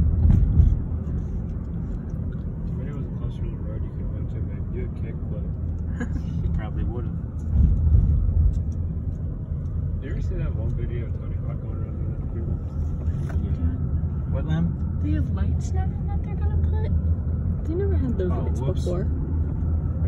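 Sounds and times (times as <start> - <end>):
car driving rumble from inside: 0.0 - 20.0.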